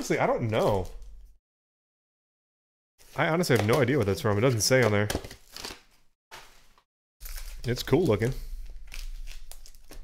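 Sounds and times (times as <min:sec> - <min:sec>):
card packs clicking and rustling: 0:03.4 - 0:10.0.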